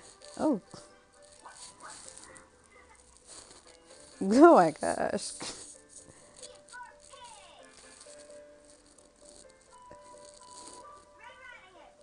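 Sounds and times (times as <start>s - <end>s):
faint tv music: 0.0s - 12.0s.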